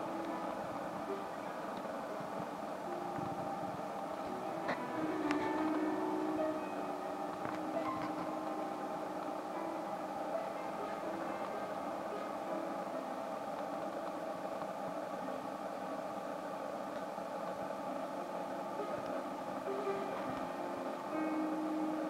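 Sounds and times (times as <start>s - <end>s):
band playing droning notes: 0.0s - 15.6s, 17.6s - 22.0s.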